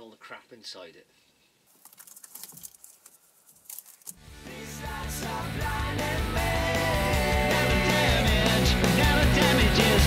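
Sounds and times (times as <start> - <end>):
insulation rustling and crackling: 1.7 - 4.2
music: 4.2 - 10.0.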